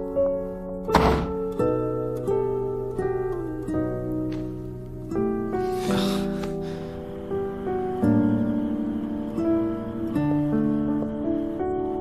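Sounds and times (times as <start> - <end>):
plucked string music: 0.0 - 12.0
door shutting thunk: 0.9 - 1.5.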